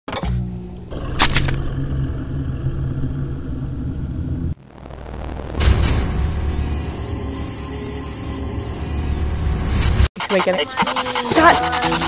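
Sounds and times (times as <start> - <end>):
ominous horror music drone: 0.5 - 9.5.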